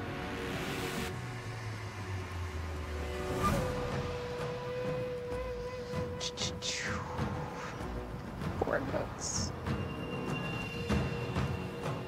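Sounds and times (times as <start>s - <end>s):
dramatic music drone: 0.0s - 12.0s.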